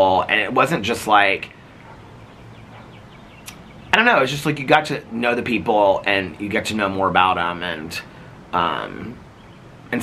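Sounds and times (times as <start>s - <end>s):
man talking: 0.0s - 1.6s, 3.9s - 9.2s
quiet background hiss: 0.0s - 10.0s
sharp click: 3.4s - 3.6s.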